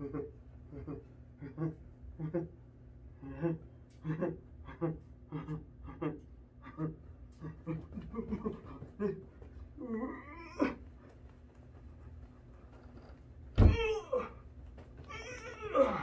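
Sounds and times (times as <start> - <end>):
person grunting and groaning: 3.2 - 9.2, 9.8 - 10.8, 13.6 - 14.4, 15.2 - 16.0.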